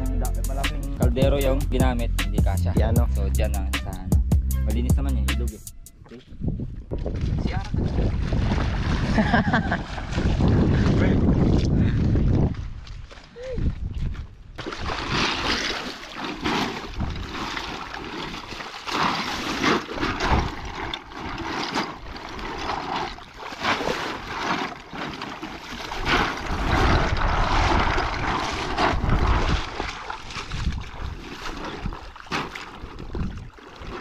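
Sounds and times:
sack dunked in water: 7.0 - 13.8, 14.5 - 34.0
feet wading through water: 7.2 - 34.0
river water splashing: 7.8 - 10.8, 14.6 - 34.0.

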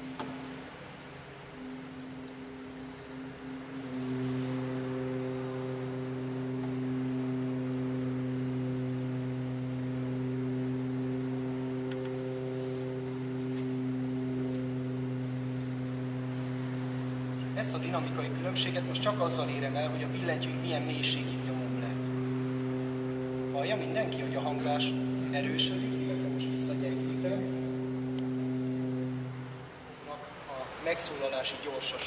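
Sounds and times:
pipe organ low note: 1.6 - 30.2.

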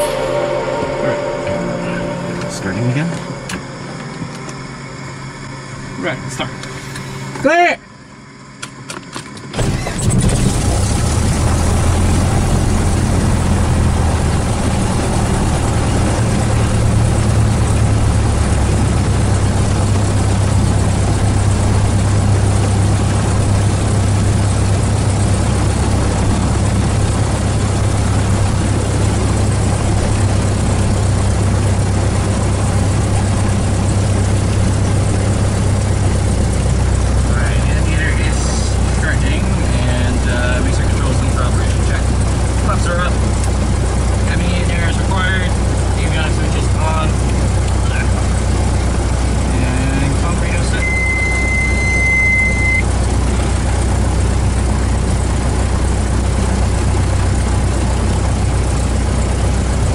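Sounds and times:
propeller plane engine idling: 2.0 - 59.9.

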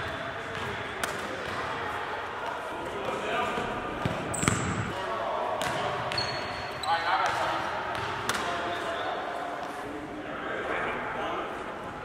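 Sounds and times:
basketball hitting rim and bouncing: 4.0 - 4.9.

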